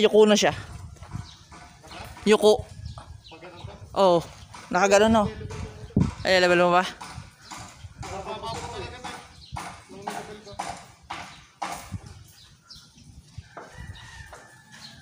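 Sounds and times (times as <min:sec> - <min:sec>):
knocks on steel roof frame: 0:04.5 - 0:12.1.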